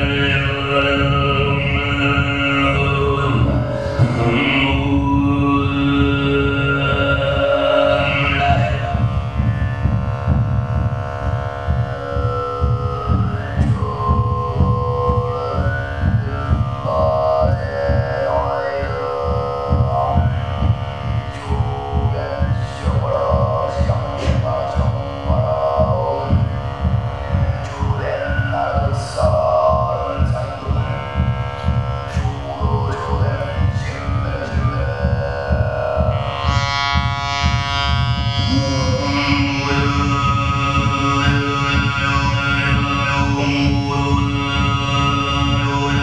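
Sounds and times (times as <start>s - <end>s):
overtone throat singing: 0.0s - 46.0s.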